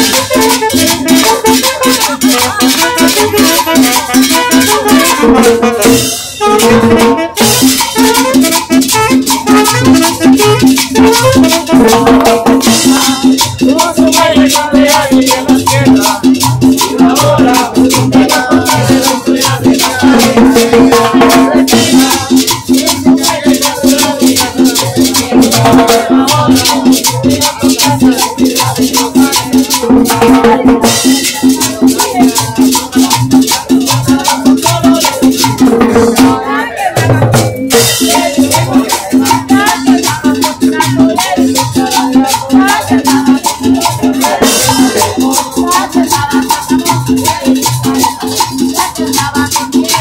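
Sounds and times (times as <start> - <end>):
shaker and scraper percussion: 0.0 - 50.0.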